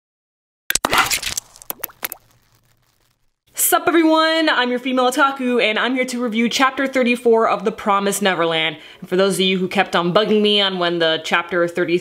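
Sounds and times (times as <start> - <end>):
cartoon pops and clicks: 0.7 - 3.2
short rising bloops: 0.7 - 3.3.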